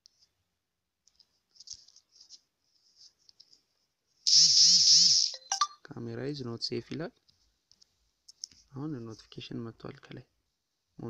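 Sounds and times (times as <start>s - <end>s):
warbling phone alert tone: 5.4s - 5.8s.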